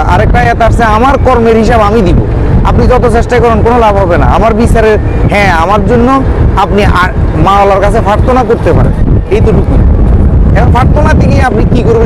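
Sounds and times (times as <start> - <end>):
man talking: 0.0 - 9.9, 10.5 - 12.0
boat engine rumble: 0.0 - 12.0
wind on microphone: 0.0 - 12.0.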